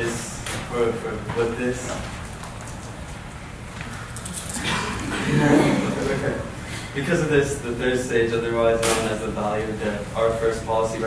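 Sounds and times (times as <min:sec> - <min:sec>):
person laughing: 0:04.6 - 0:06.6.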